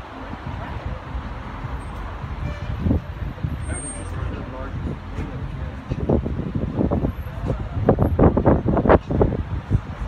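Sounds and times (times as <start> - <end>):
people chattering: 0.0 - 8.9
steady low rumble: 0.0 - 10.0.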